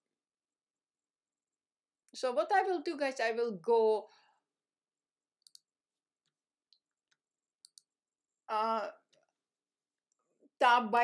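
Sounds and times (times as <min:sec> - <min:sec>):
computer mouse clicks: 0:05.4 - 0:07.9.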